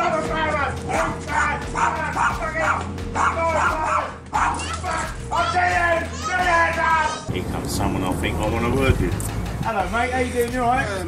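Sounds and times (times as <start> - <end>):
voices: 0.0 - 11.0
small dog barking: 1.7 - 2.4, 3.2 - 4.8.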